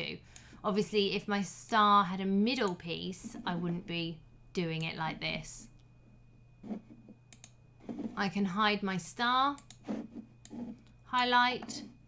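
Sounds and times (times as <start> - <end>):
faint low hum: 0.0 - 12.0
computer mouse clicks: 7.3 - 7.6, 9.5 - 11.0.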